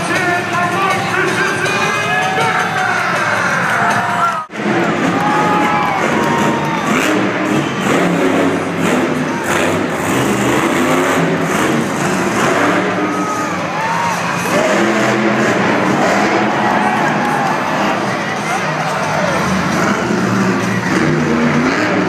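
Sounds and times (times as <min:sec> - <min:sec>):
crowd cheering: 0:00.0 - 0:22.0
truck engine revving: 0:04.5 - 0:22.0.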